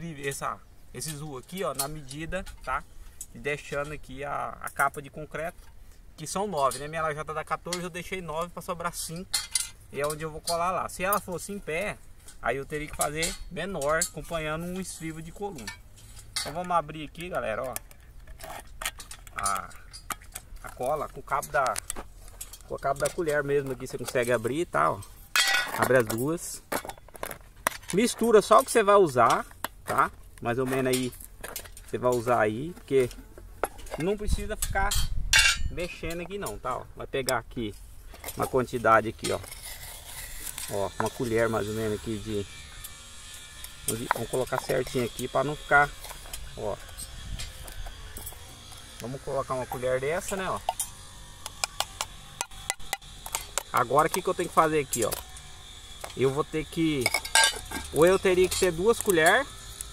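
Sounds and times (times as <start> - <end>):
metal spoon scraping tin can: 38.1 - 59.9.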